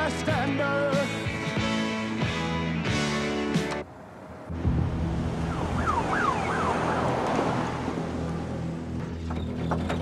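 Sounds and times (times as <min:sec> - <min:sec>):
car running with road noise: 0:01.3 - 0:10.0
siren wailing: 0:05.4 - 0:07.8.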